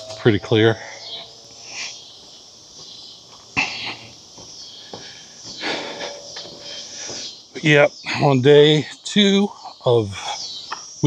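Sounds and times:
insects chirring: 0.0 - 11.0
person breathing: 4.8 - 7.4.

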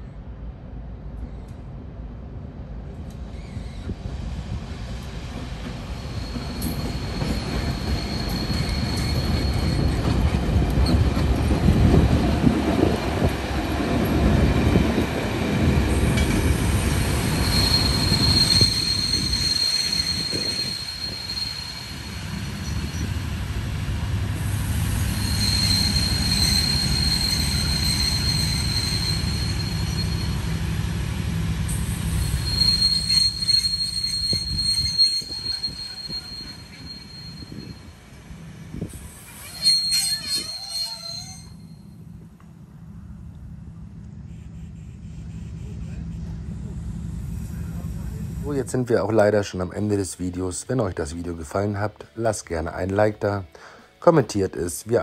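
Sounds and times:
diesel locomotive engine: 0.0 - 53.0
train coaches rumbling: 0.2 - 55.0
high-pitched wheel squeals: 6.1 - 10.1, 17.0 - 23.2, 25.0 - 30.5, 31.9 - 37.9, 39.0 - 41.8.

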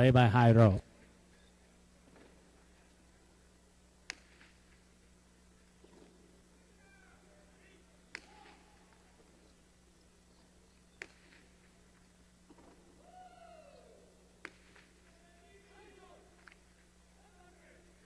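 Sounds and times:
quiet steady hum: 0.0 - 18.0
ball cracking on hard court: 4.1 - 4.6, 8.1 - 8.6, 11.0 - 11.5, 14.4 - 14.9.

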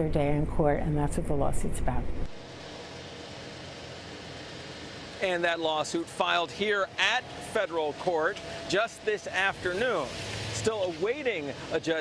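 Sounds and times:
distant traffic: 0.0 - 12.0
city background hiss: 2.2 - 12.0.

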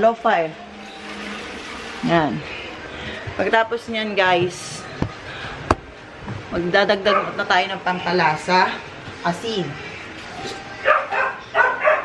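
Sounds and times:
dog barking high-pitched: 10.8 - 12.0.

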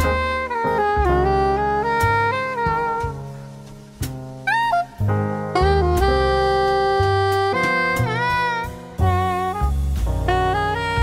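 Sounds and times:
piano chords: 0.0 - 11.0
saxophone melody: 0.0 - 11.0.

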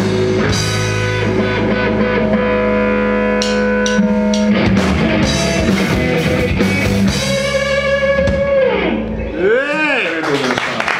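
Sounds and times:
rock band closing chord: 0.0 - 9.3
ringing bass and cymbals: 0.0 - 9.5
electric guitar note bending: 0.0 - 9.6.

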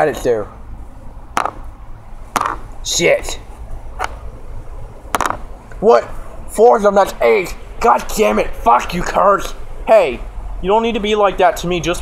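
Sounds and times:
plastic toy pieces knocking: 1.4 - 1.6, 2.4 - 2.6, 5.1 - 5.4.

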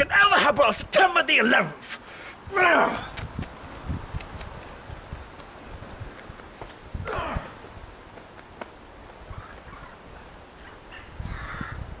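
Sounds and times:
low wind rumble: 2.4 - 12.0.

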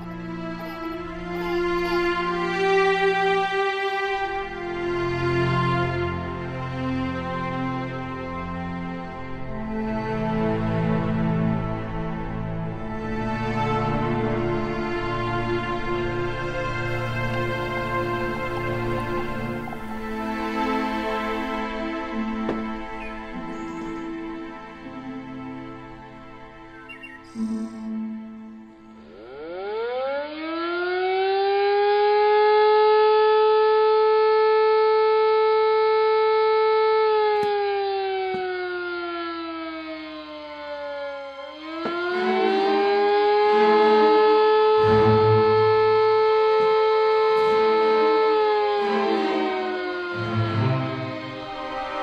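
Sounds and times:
alarm siren wailing: 0.0 - 52.0.

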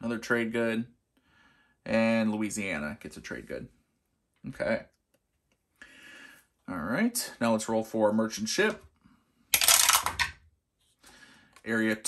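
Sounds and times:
dice rattling and clattering: 9.6 - 10.4.

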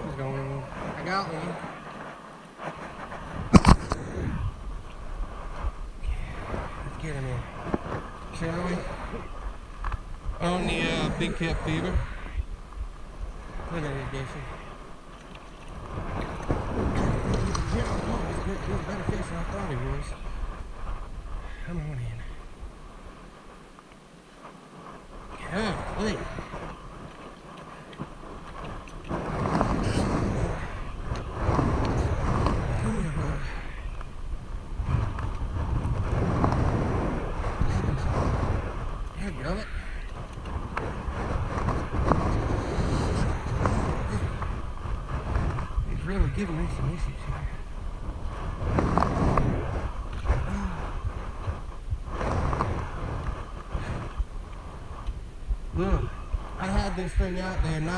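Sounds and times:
wind buffeting microphone: 0.0 - 57.9.

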